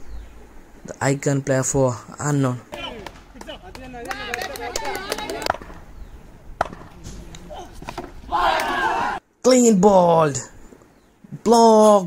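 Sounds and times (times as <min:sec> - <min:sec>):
players shouting: 0:02.6 - 0:05.8, 0:06.6 - 0:09.2.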